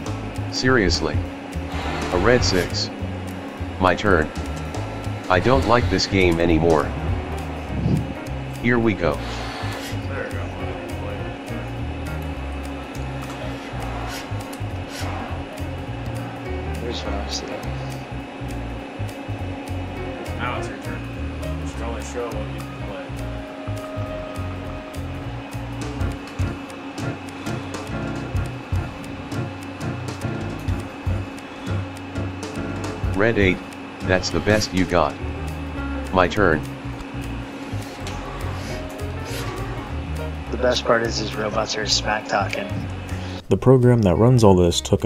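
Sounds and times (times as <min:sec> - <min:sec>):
background music: 0:00.0 - 0:45.0
whirring motor hum: 0:00.0 - 0:45.0.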